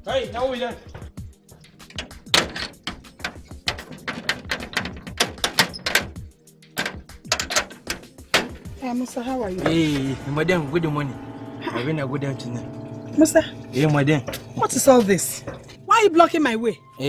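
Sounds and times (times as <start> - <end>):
background music: 0.0 - 17.0
banging on metal gate: 1.8 - 8.8.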